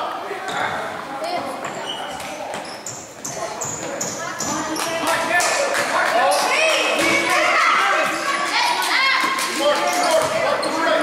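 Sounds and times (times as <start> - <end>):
sneakers squeaking on hardwood: 1.4 - 5.2, 9.9 - 11.0.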